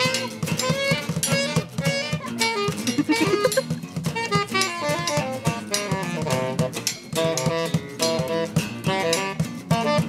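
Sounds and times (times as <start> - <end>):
guitars strumming: 0.0 - 10.0
saxophones holding notes: 0.0 - 10.0.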